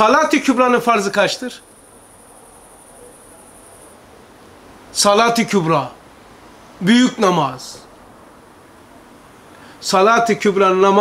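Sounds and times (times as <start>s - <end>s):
crickets chirping: 0.0s - 9.8s.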